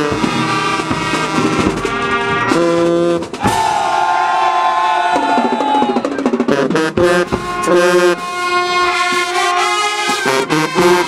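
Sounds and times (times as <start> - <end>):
drum strokes: 0.0 - 11.0
marching band playing: 0.0 - 11.0.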